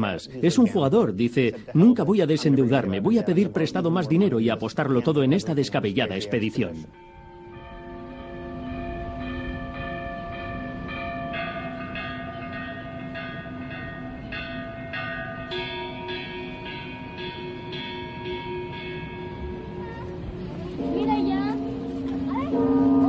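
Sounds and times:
church bells pealing: 0.0s - 23.0s.

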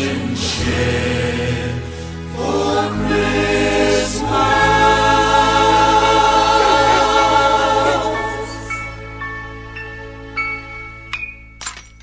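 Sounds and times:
choir singing gospel music: 0.0s - 9.8s.

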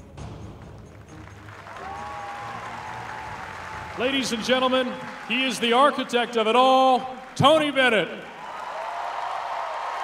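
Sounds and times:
audience applause: 0.9s - 10.0s.

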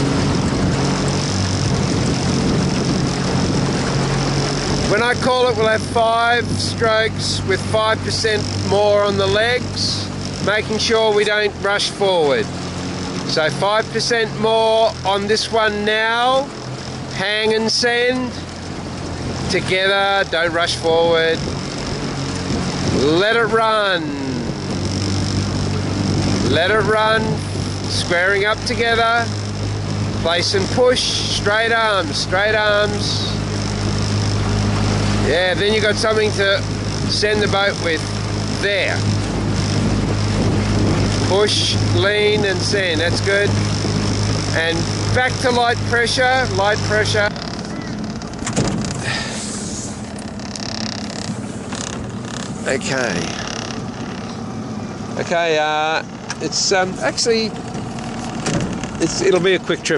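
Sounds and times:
wind noise: 0.0s - 11.7s, 18.2s - 55.2s
boat motor running: 0.0s - 59.9s
water noise: 0.0s - 59.9s.

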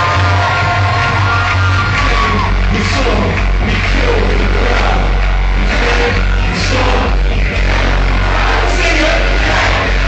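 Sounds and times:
loud live music with heavy bass: 0.0s - 10.0s.

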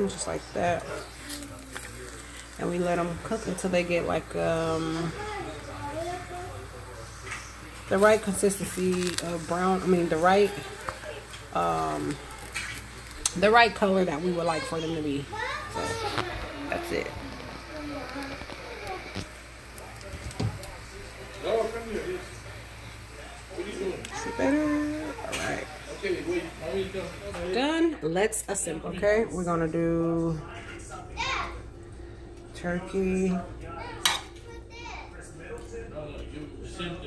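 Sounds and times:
tortillas sizzling in a skillet: 0.0s - 27.8s
child's voice: 5.0s - 6.6s, 14.5s - 17.1s, 17.7s - 19.2s, 31.2s - 31.6s, 33.8s - 35.2s.

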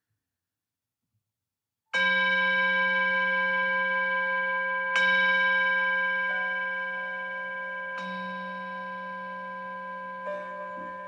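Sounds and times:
meditation bell ringing: 2.0s - 11.0s.

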